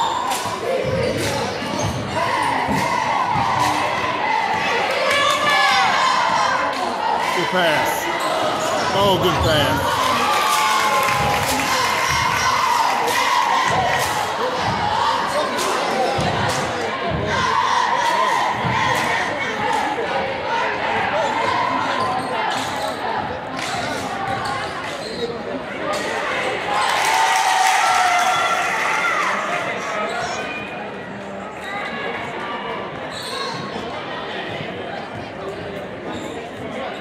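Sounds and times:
voices and calls of people: 0.0 - 37.0.

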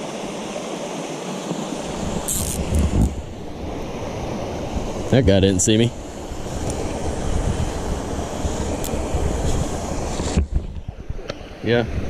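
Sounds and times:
stream rushing over rocks: 0.0 - 12.0
wind rumble on microphone: 1.5 - 12.0.

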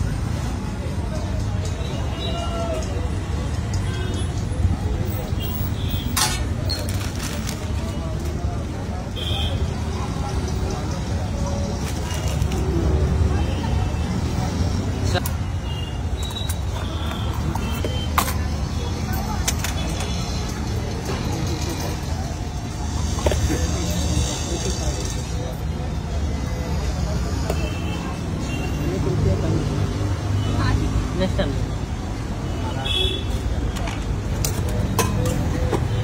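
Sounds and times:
road traffic rumble: 0.0 - 36.0.

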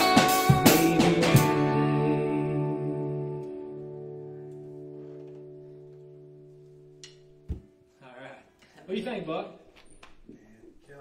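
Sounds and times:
guitar chord ringing: 0.0 - 8.0
thump: 7.5 - 7.7.

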